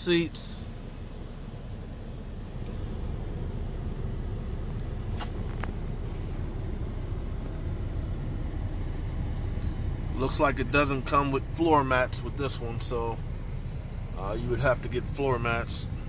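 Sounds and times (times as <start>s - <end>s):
low rumble inside a car: 0.0s - 16.0s.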